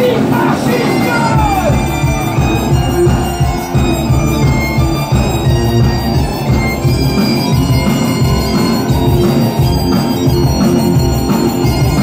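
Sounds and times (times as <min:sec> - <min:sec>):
bass guitar: 0:00.0 - 0:12.0
driving drum beat: 0:00.0 - 0:12.0
electric guitar: 0:00.0 - 0:12.0
bagpipes playing melody: 0:00.7 - 0:12.0.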